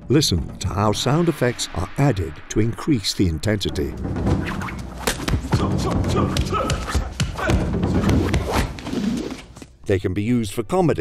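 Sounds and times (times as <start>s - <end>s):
film score with low pulse: 0.0s - 9.3s.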